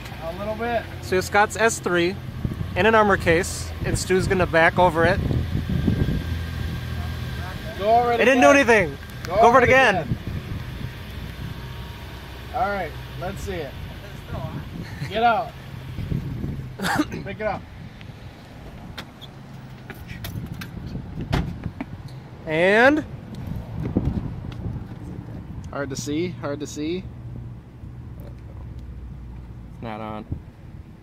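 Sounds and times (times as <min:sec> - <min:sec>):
car reversing slowly on asphalt: 0:00.0 - 0:22.4.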